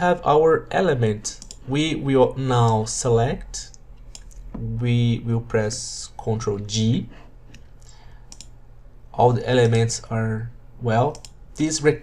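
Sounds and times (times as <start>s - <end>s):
low room noise: 0.0s - 12.0s
computer mouse clicks: 1.4s - 1.6s, 3.7s - 4.5s, 7.5s - 8.6s, 11.1s - 11.4s.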